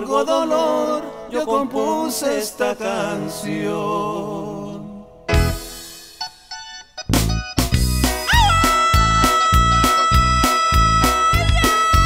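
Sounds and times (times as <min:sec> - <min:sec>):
bass and drum beat: 0:07.1 - 0:12.0
lead instrument holding high note: 0:08.2 - 0:12.0.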